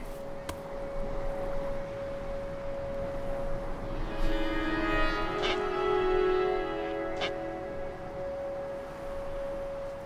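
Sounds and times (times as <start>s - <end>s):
low full sustained note: 0.0s - 10.0s.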